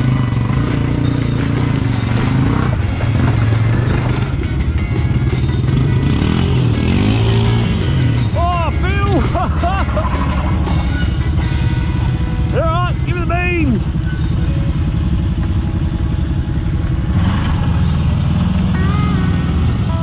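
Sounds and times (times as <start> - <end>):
off-road vehicle engines droning: 0.0 - 20.0.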